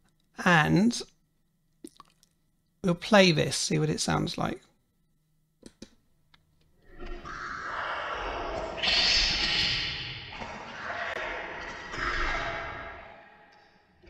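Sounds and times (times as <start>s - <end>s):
reversed reverberant speech: 7.2s - 14.0s.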